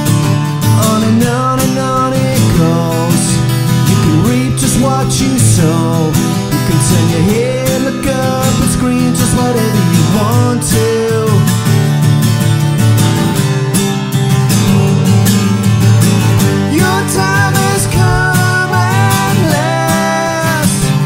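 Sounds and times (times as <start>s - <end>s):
acoustic guitar strumming: 0.0s - 21.0s
man singing: 0.7s - 11.7s, 16.6s - 21.0s.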